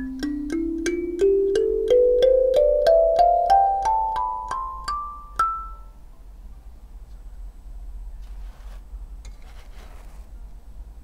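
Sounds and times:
hands rustling on artificial turf: 8.2 - 10.5.

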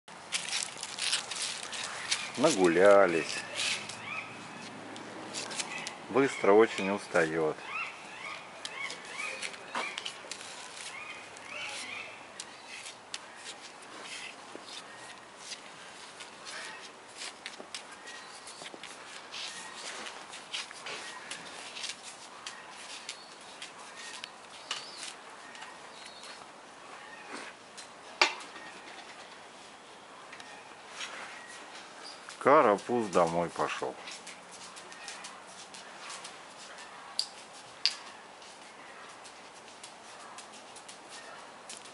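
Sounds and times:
claws clicking on tiled floor: 0.3 - 4.0, 8.6 - 26.4, 34.0 - 41.9.

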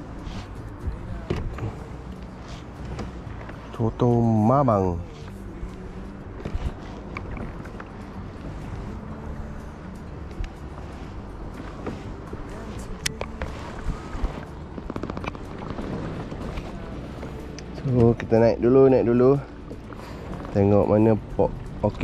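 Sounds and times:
light wind: 0.0 - 22.0
water lapping against kayak hull: 0.0 - 22.0.

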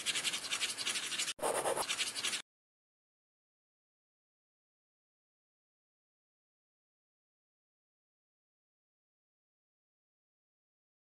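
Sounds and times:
pen scribbling on paper: 0.0 - 2.4.

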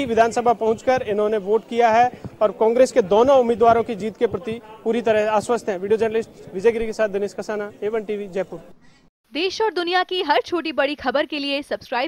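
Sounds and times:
man speaking: 0.0 - 8.8.

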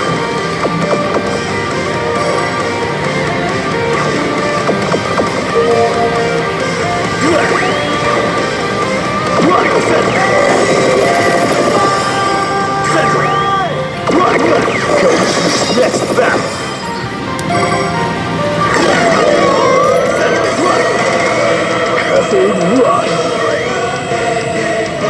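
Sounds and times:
slot machine music: 0.0 - 25.0
electronic sound effects: 3.7 - 25.0.

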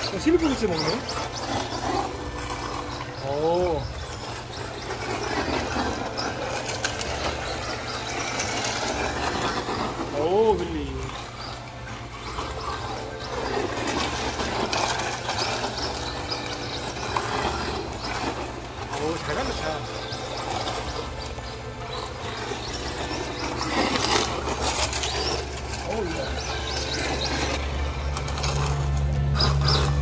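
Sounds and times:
people's voices: 0.0 - 14.5, 17.2 - 29.8
rc car motor on gravel: 0.0 - 30.0.

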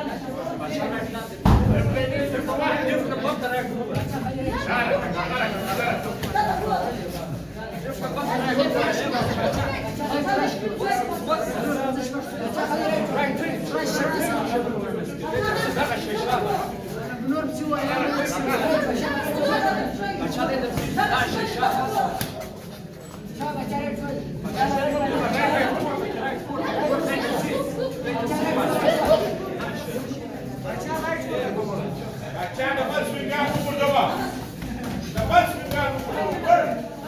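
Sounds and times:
hubbub of overlapping voices: 0.0 - 37.0
people chattering: 0.0 - 37.0.

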